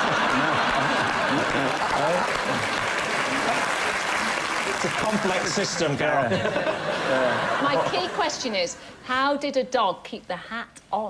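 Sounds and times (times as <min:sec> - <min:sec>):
audience applauding: 0:00.0 - 0:06.2
audience laughing: 0:00.0 - 0:08.6.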